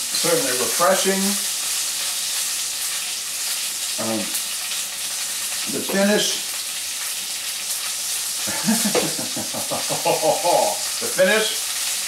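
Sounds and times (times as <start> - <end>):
food sizzling in a pan: 0.0 - 12.0
man saying um: 5.7 - 6.4, 10.2 - 11.6.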